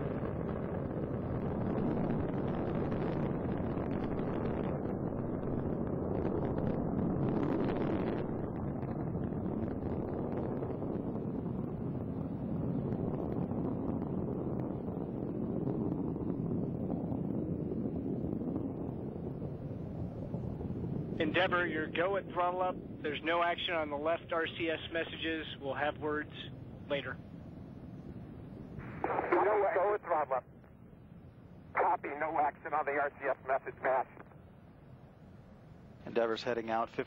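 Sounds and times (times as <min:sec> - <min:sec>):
rocket exhaust rumble: 0:00.0 - 0:37.0.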